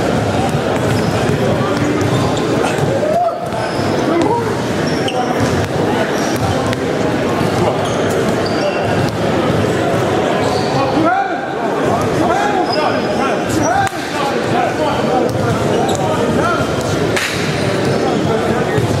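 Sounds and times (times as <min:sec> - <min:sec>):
voices chattering in echoing hall: 0:00.0 - 0:19.0
basketballs bouncing on hardwood: 0:00.1 - 0:04.4.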